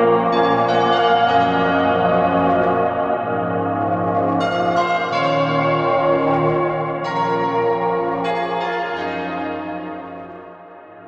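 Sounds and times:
background music of sustained tones: 0:00.0 - 0:11.0.

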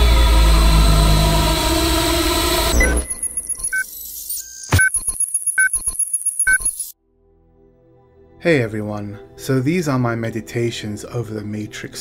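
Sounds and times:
deep low drone: 0:00.0 - 0:03.0
electronic glitch beeps and clicks: 0:02.6 - 0:07.0.

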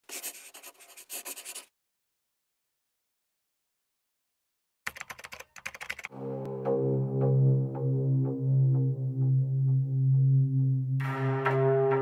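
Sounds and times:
pen scratching on paper: 0:00.0 - 0:01.7.

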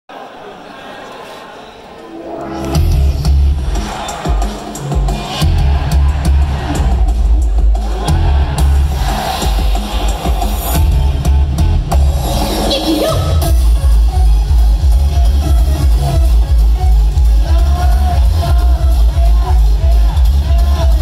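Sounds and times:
pop song over speakers: 0:02.5 - 0:21.0.

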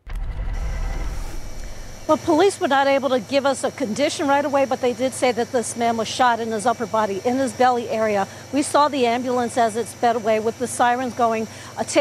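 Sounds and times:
low outdoor rumble: 0:00.0 - 0:03.0.

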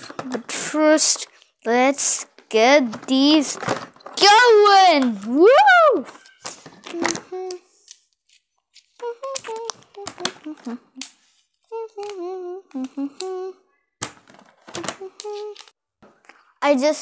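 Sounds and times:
child humming: 0:05.9 - 0:07.7, 0:09.0 - 0:11.1, 0:11.7 - 0:13.7, 0:14.8 - 0:15.7.

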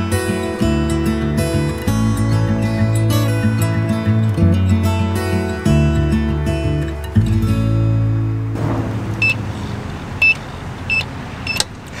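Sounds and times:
acoustic guitar chord: 0:00.0 - 0:09.8
outdoor background noise: 0:00.0 - 0:12.0
short high electronic beeps: 0:09.2 - 0:09.4.

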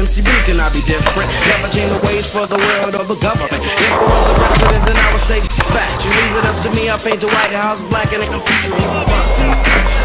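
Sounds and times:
hip hop beat: 0:00.0 - 0:10.0
skateboard wheels rolling on pavement: 0:00.7 - 0:10.0.

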